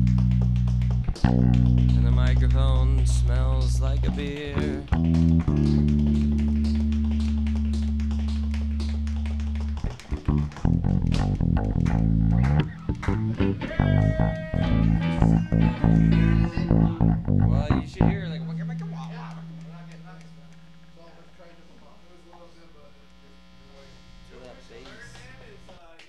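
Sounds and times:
amplified electric guitar and bass: 0.0 - 21.0.

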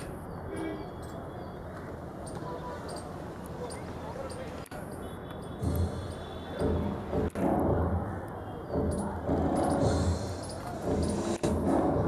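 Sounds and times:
stadium background noise: 0.0 - 12.0.

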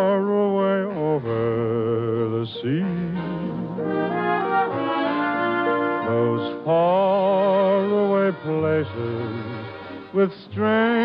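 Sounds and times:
brass playing held chords: 2.8 - 11.0.

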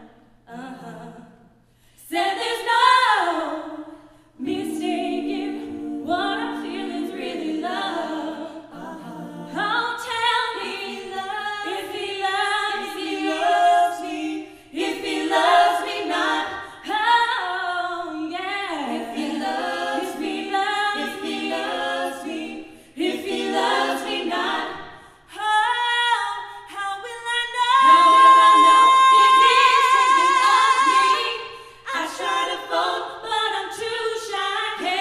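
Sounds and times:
vocal group singing a cappella: 0.0 - 35.0.

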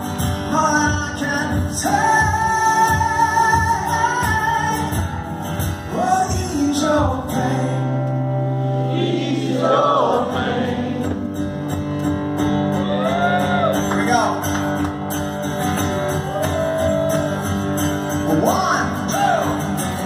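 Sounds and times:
guitar chords: 0.0 - 20.0
man singing: 0.2 - 8.1.

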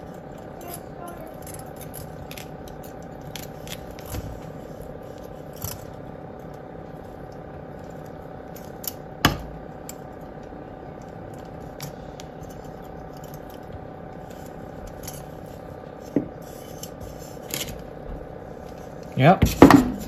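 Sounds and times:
pliers clicking and scraping: 0.0 - 4.2
steady room hum: 0.0 - 20.0.

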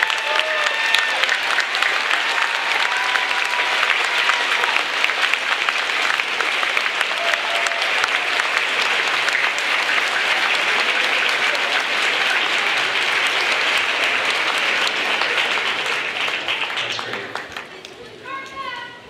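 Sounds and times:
large crowd applauding: 0.0 - 18.3.

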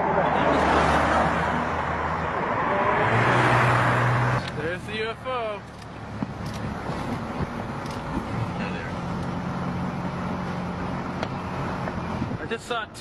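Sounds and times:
city street traffic: 0.0 - 13.0
vehicle engine hum: 0.0 - 13.0.

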